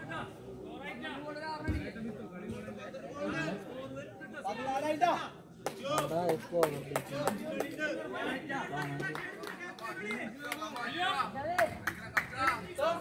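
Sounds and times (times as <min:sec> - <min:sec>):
men calling and chattering: 0:00.0 - 0:13.0
sharp hand claps: 0:05.6 - 0:07.8.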